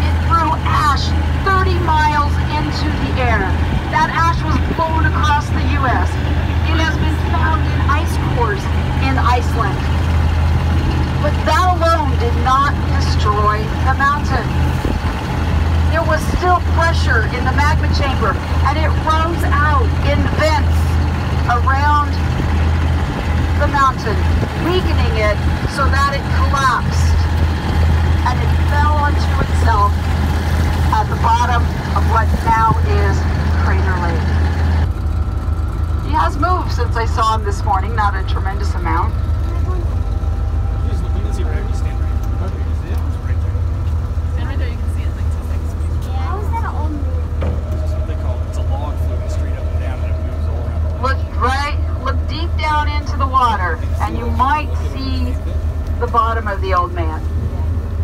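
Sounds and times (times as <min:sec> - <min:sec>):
boat engine humming: 0:00.0 - 0:58.0
person talking: 0:51.3 - 0:57.6.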